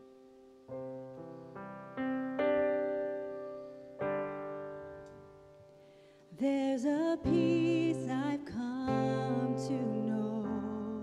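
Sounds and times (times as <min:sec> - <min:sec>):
woman singing: 0:06.3 - 0:11.0.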